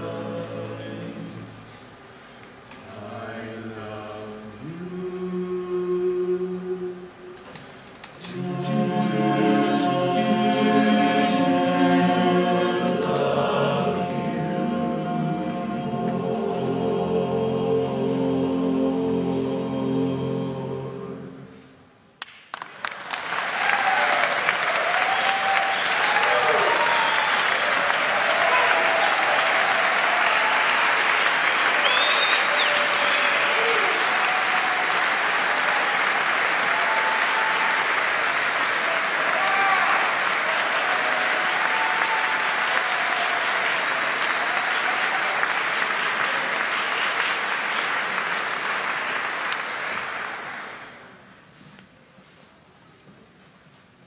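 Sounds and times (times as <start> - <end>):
audience applauding and cheering: 22.2 - 51.3.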